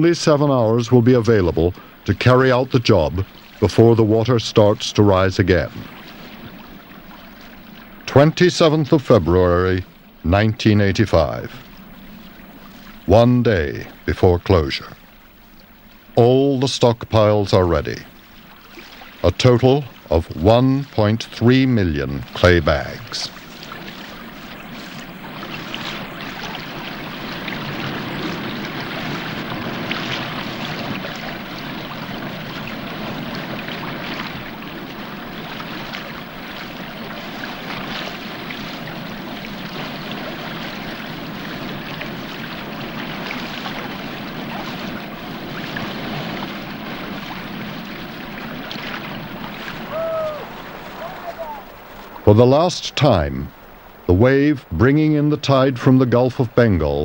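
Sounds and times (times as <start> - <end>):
tidal water rushing over mudflats: 0.0 - 57.0.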